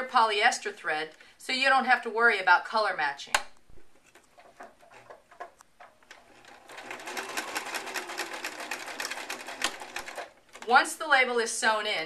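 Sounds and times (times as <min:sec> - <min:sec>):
sewing machine stitching: 0:06.1 - 0:10.8.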